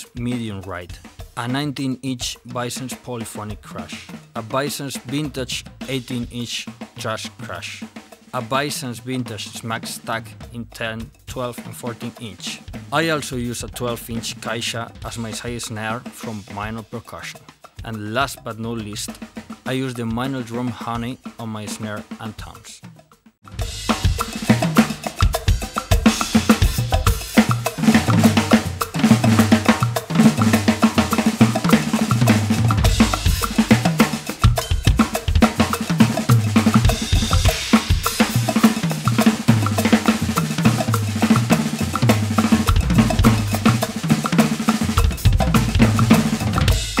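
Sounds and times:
drum kit playing groove: 0:00.0 - 0:47.0
repeating bass line: 0:23.6 - 0:47.0.

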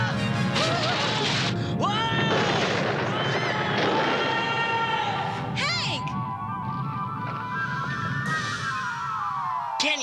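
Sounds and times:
background music: 0:00.0 - 0:10.0
loud earthquake rumble: 0:01.8 - 0:08.6.

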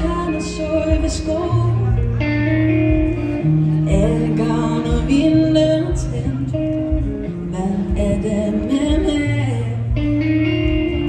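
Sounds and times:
live band playing pop song: 0:00.0 - 0:11.0.

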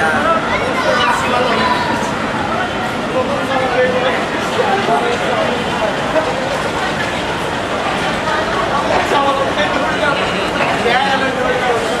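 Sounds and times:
voices talking and calling: 0:00.0 - 0:12.0.

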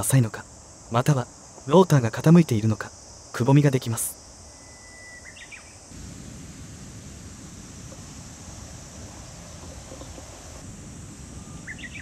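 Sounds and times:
high insect buzz: 0:00.0 - 0:12.0
bird chirp: 0:04.5 - 0:05.9, 0:11.4 - 0:12.0.

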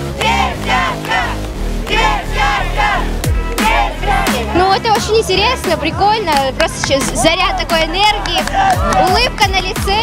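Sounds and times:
crowd chanting and cheering: 0:00.0 - 0:09.4
electronic music with bass: 0:00.0 - 0:10.0.

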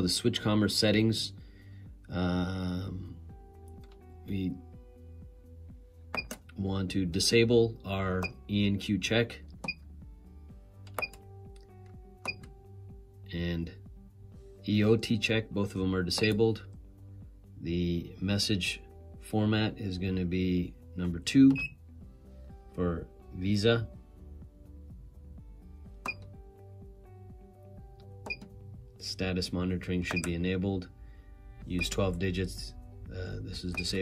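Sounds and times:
quiet background music: 0:00.0 - 0:34.0.

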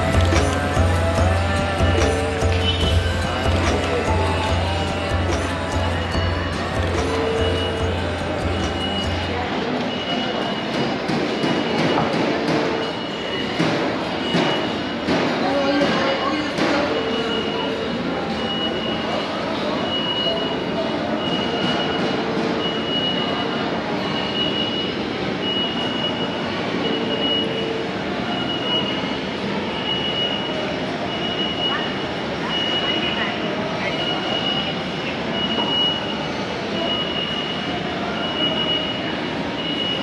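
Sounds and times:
short high electronic beep: 0:00.0 - 0:09.4
indistinct crowd voices: 0:00.0 - 0:40.0.

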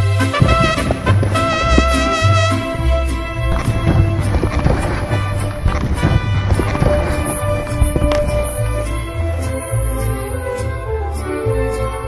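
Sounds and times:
latin band music with brass: 0:00.0 - 0:12.0.

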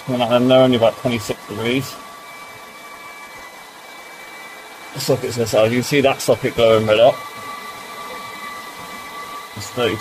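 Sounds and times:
faint high whine: 0:00.0 - 0:10.0
hair dryers whirring: 0:00.0 - 0:10.0.

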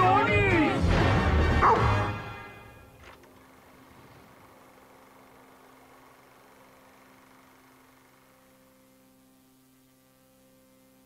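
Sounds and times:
background music with steady beat: 0:00.0 - 0:02.9
dog vocalizing: 0:01.6 - 0:02.2.

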